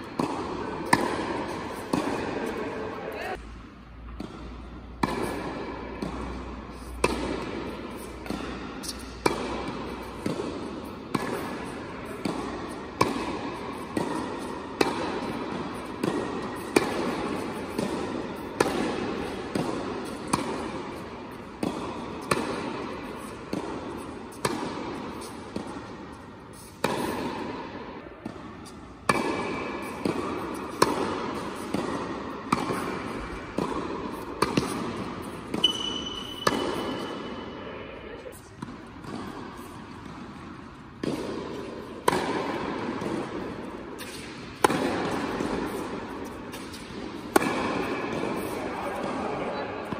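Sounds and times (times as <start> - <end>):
tennis rackets hitting ball: 0.0 - 49.9.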